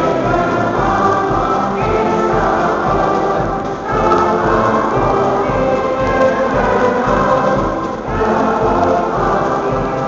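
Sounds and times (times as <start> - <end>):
wind band playing slow chorale: 0.0 - 10.0.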